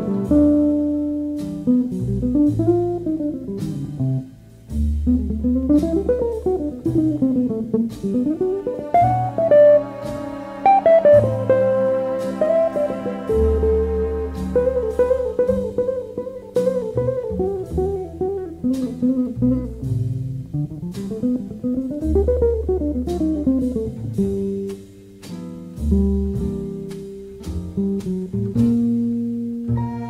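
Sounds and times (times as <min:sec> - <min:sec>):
electric jazz guitar melody: 0:00.0 - 0:30.0
low bass notes: 0:00.0 - 0:30.0.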